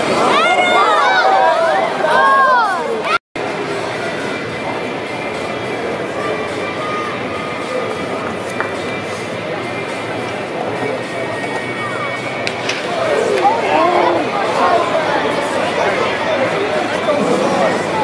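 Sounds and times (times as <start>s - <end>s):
background chatter of voices: 0.0s - 18.0s
faint music: 0.0s - 18.0s.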